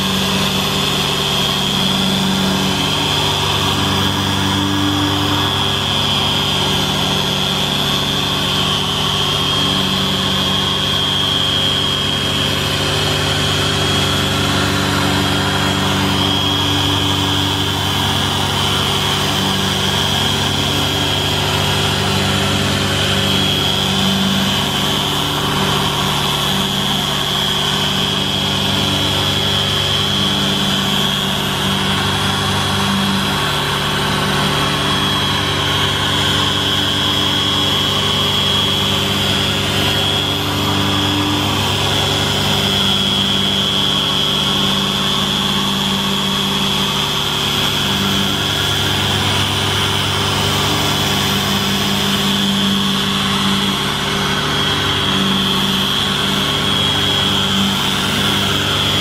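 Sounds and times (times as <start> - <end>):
petrol generator engine running: 0.0 - 59.0
polisher high whine: 0.0 - 59.0.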